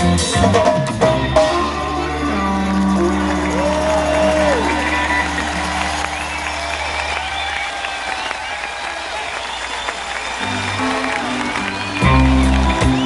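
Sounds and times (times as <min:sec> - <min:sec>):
bass notes: 0:00.0 - 0:07.7, 0:10.4 - 0:13.0
live reggae band: 0:00.0 - 0:08.8, 0:10.4 - 0:13.0
audience applause and cheering: 0:01.6 - 0:13.0.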